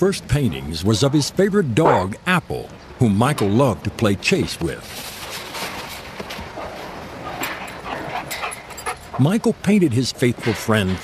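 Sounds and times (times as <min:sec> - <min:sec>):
dog yelping: 0:01.8 - 0:02.1.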